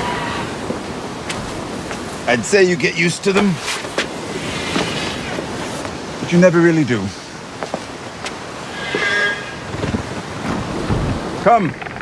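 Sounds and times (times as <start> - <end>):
high creature shriek: 0.0 - 0.6, 8.6 - 9.7
surf: 0.0 - 12.0
wind: 0.0 - 12.0
low rumbling whooshes: 8.4 - 11.4.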